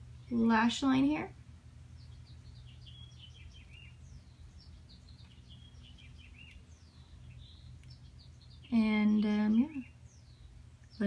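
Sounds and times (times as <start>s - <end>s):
birds chirping faintly: 0.0s - 11.0s
low steady hum: 0.0s - 11.0s.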